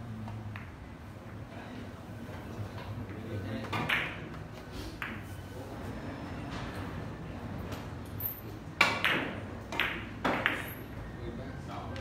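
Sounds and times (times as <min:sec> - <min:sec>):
billiard balls clicking: 0:08.8 - 0:10.9.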